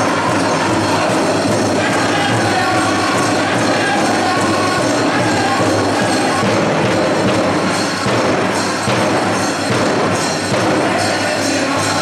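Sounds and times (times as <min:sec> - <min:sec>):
drum group drumming and singing: 0:00.0 - 0:12.0
metal jingles and bells rattling: 0:00.0 - 0:12.0.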